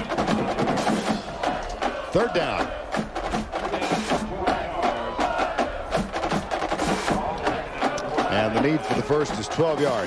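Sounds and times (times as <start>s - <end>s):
drum cadence with rapid clicks: 0.0s - 10.0s.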